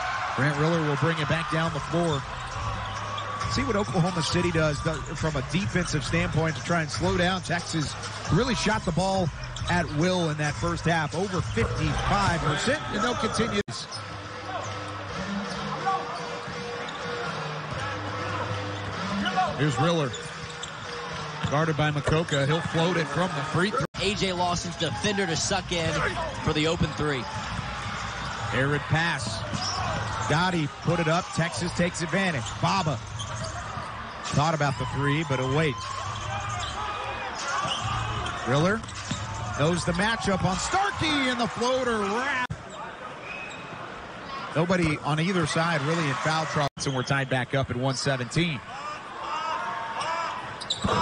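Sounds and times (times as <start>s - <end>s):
crowd voices: 0.0s - 51.0s.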